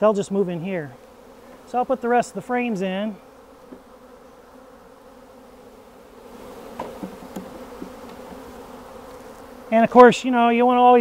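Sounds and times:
honeybees buzzing: 0.0s - 11.0s
light wooden knocks: 6.8s - 8.5s.

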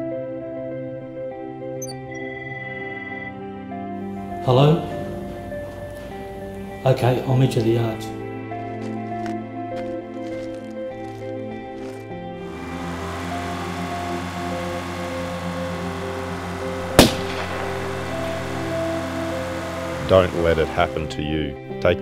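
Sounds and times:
gunshot: 17.0s - 17.7s.

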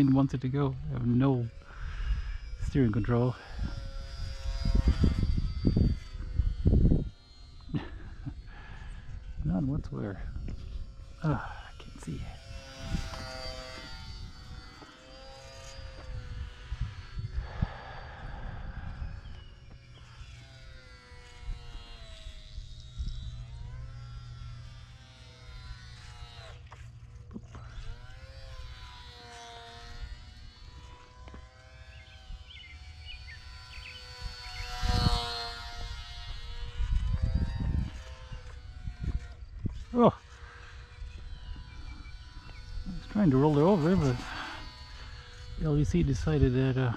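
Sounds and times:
model plane motor whining: 0.0s - 46.9s
wind buffeting microphone: 0.8s - 23.9s, 33.5s - 46.9s.

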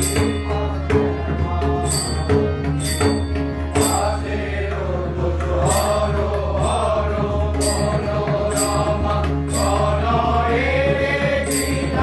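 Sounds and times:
bright metallic strikes: 5.5s - 10.5s, 11.4s - 12.0s.

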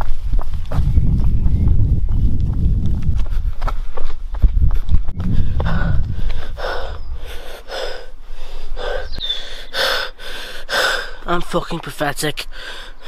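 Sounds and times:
low rumble of handling noise: 4.9s - 7.3s
person panting hard: 5.2s - 11.2s, 12.5s - 13.0s.

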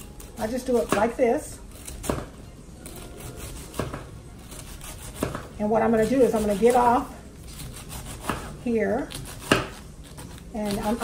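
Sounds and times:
serrated knife slicing cabbage: 0.0s - 11.0s
knife striking plastic board: 9.4s - 9.8s.

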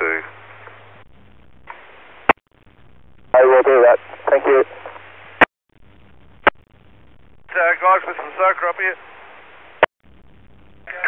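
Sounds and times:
radio scanner hiss: 3.3s - 6.9s, 7.5s - 11.0s.

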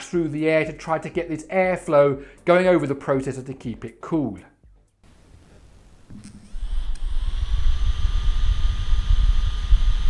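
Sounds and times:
smartphone cooling fan whine: 5.1s - 10.0s.

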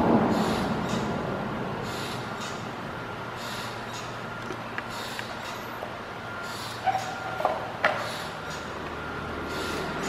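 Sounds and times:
short squeak: 6.4s - 8.7s.

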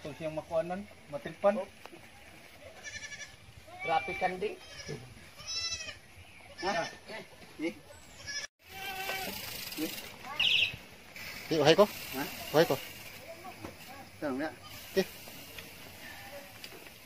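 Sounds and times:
goats bleating: 2.7s - 7.1s, 8.1s - 9.5s.

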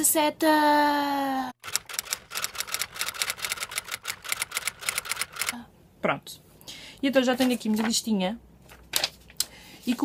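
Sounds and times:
typewriter keys clacking: 1.6s - 5.6s.

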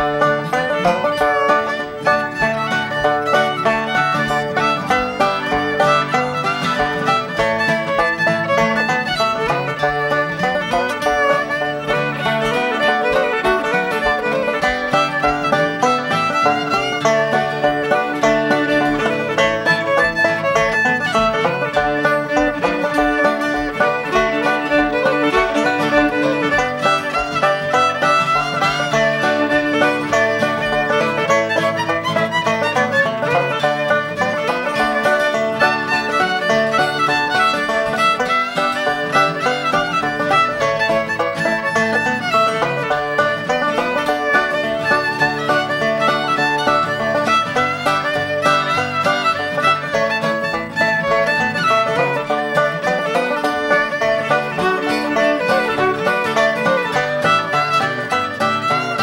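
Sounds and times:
acoustic guitar: 0.0s - 59.0s
banjo: 0.0s - 59.0s
fiddle leading a tune: 0.0s - 59.0s.

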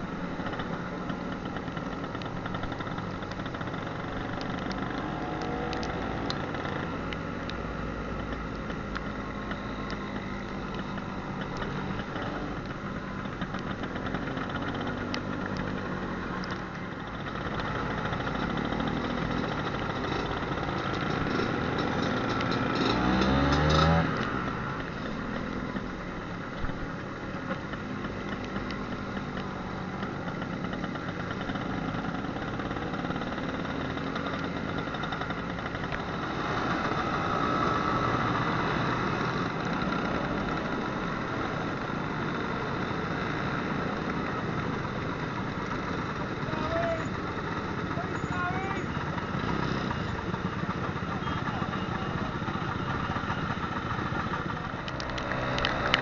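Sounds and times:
scooter engine revving: 0.0s - 56.0s
wind and road noise: 0.0s - 56.0s.

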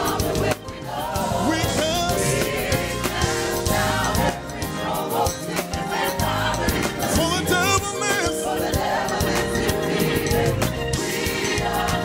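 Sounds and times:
drum kit: 0.0s - 12.0s
keyboard: 0.0s - 12.0s
singers in harmony: 0.0s - 12.0s.

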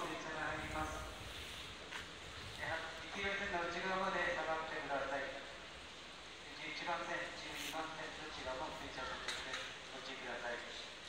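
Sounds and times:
public address announcer voice: 0.0s - 1.2s
railway platform ambience: 0.0s - 11.0s.

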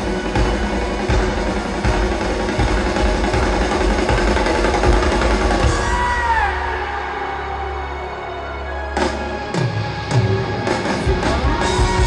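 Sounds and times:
marching drums: 0.0s - 6.8s
rock band playing: 0.0s - 12.0s.

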